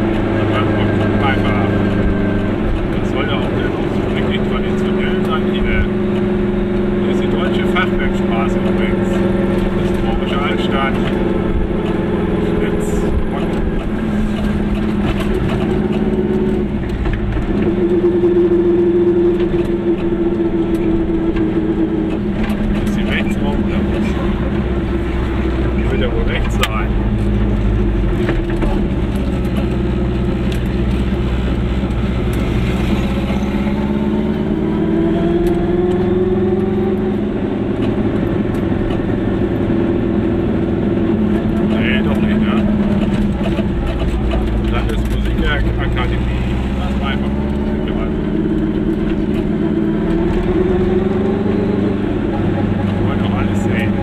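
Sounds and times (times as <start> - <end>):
car engine inside cabin: 0.0 - 54.0.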